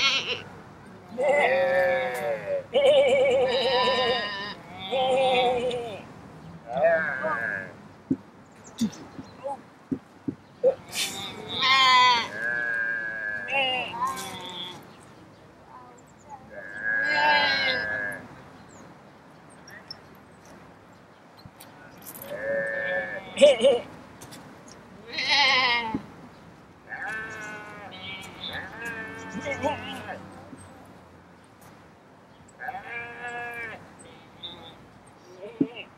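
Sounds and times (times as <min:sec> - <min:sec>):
person imitating sheep bleat: 0:27.4 - 0:30.2.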